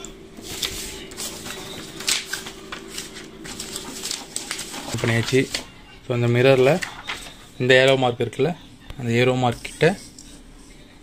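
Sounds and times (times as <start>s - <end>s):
paper rustling: 0.4s - 5.8s, 6.4s - 7.6s.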